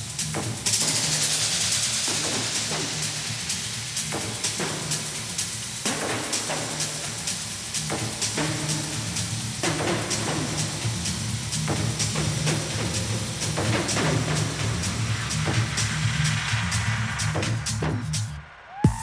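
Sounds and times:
bright hissing noise swell: 0.0 - 17.8
kick drum beat: 1.6 - 19.0.

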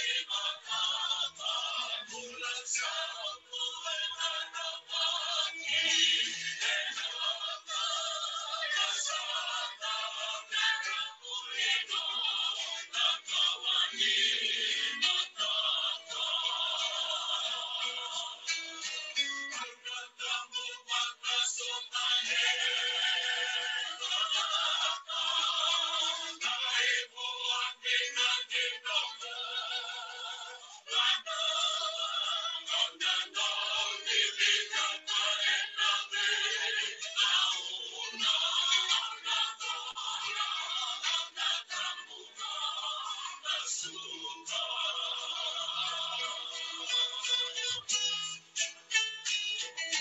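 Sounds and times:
music: 0.0 - 50.0
recorded song with singing: 0.0 - 50.0.

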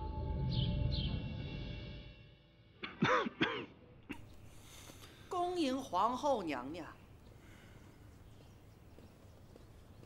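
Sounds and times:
man coughing hoarsely: 2.8 - 4.2.

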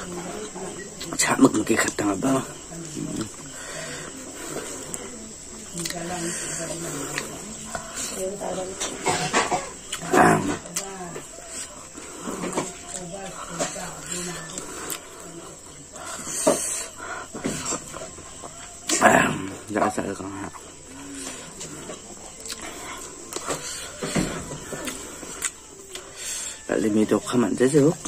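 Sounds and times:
chewing and wet mouth smacks: 5.7 - 6.0, 22.4 - 23.6.

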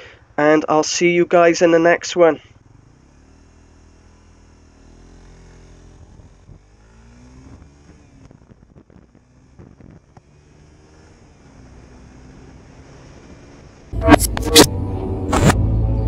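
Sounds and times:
motorcycle engine revving: 2.2 - 16.0.

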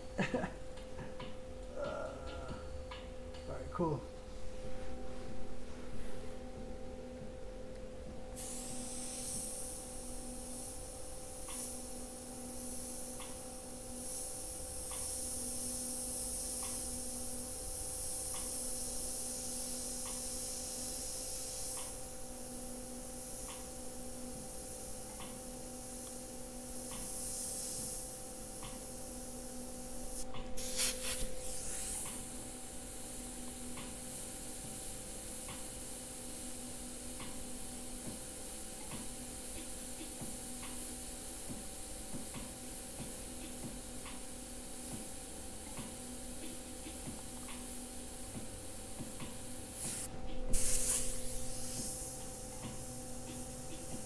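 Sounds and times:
steady hum: 0.0 - 54.0
airbrush spraying hiss: 8.3 - 54.0
bursts of air: 30.0 - 32.2, 49.7 - 54.0.

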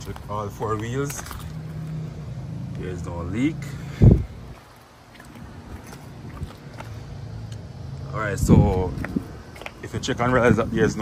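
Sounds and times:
soft footsteps on pavement: 0.0 - 11.0.

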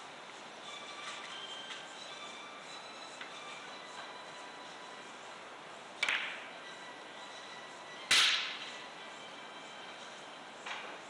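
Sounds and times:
billiard balls clacking: 6.0 - 6.5.

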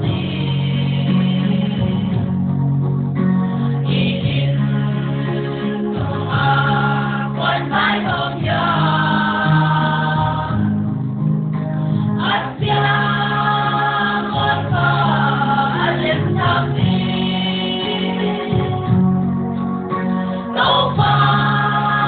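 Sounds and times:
choir singing gospel: 0.0 - 2.4, 3.6 - 11.0, 11.9 - 22.0.

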